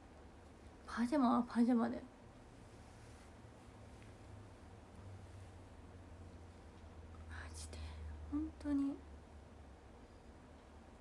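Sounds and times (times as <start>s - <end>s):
low steady hum: 0.0s - 11.0s
woman's breathy whisper: 7.2s - 9.0s.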